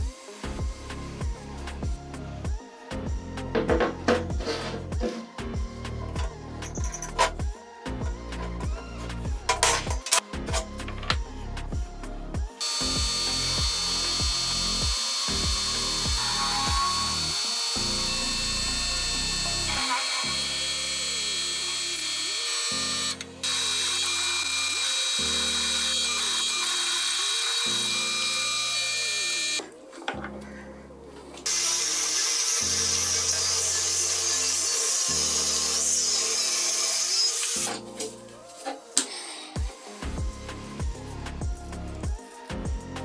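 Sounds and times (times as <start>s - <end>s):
background music with slow chords: 0.0s - 43.0s
drill press whining into steel: 12.6s - 29.6s
angle grinder cutting steel: 12.6s - 29.7s, 31.4s - 37.8s.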